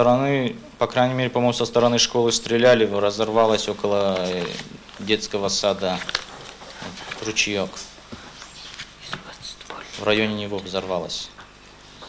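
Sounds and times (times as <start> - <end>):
faint whispering: 8.5 - 10.2.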